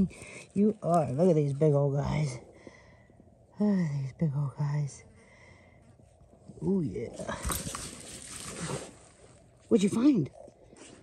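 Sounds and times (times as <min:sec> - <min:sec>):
dog digging in dry soil: 0:06.0 - 0:11.0.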